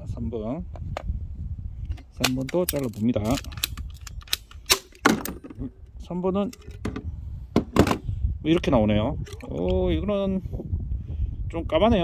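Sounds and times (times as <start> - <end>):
pipe cutter clicking and snapping: 2.2 - 5.4.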